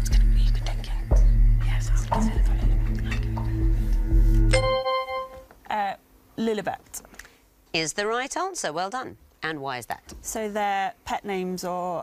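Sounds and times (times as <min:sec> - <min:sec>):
people whispering: 0:00.0 - 0:03.8
low droning background music: 0:00.0 - 0:05.5.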